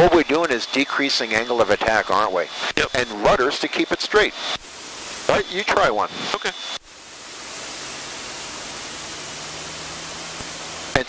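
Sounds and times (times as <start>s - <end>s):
light aircraft cockpit noise: 0.0s - 11.0s.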